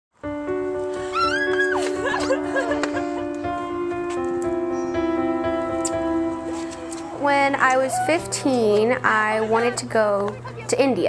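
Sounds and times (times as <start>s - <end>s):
music with sustained notes: 0.2s - 10.7s
high cry: 1.1s - 2.7s, 7.0s - 8.3s.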